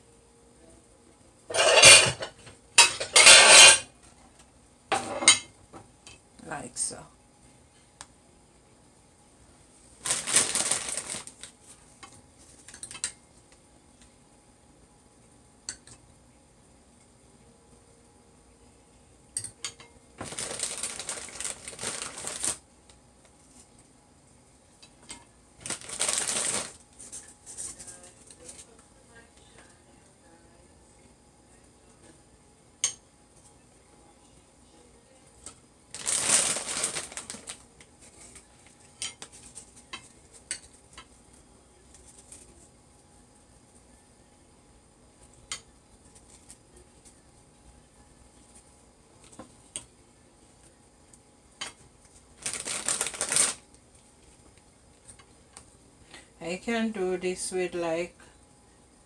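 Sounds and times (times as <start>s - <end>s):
utensils and crockery clicking: 1.5s - 3.9s
plastic packet rustling: 10.0s - 11.6s, 20.2s - 22.6s, 25.6s - 27.2s, 35.9s - 39.8s, 52.3s - 53.6s.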